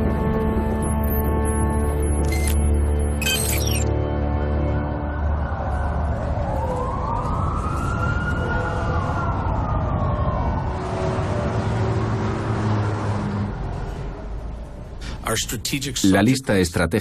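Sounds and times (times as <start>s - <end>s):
siren wailing: 4.6s - 12.8s.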